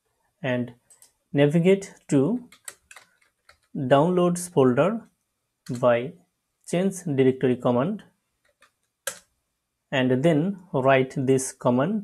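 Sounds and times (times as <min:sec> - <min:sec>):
keyboard keys clicking: 0:02.5 - 0:03.8.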